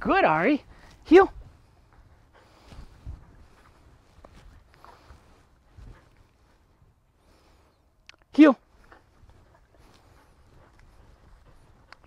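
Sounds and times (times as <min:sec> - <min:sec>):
footsteps on grass: 0:00.6 - 0:07.0.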